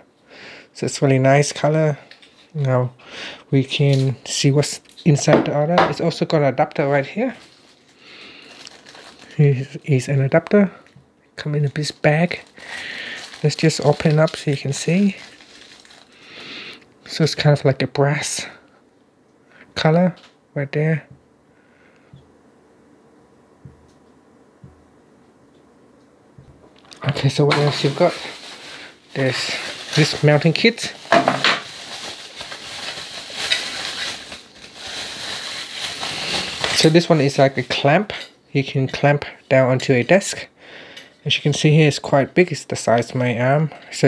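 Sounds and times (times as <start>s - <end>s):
plastic bag crinkling: 7.0s - 9.5s, 11.6s - 16.8s, 26.8s - 38.1s.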